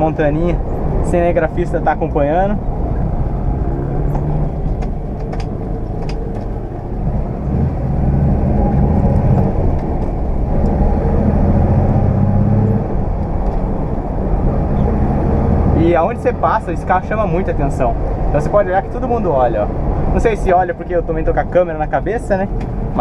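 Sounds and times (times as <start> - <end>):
car engine pulling: 0.0 - 23.0
road noise: 0.0 - 23.0.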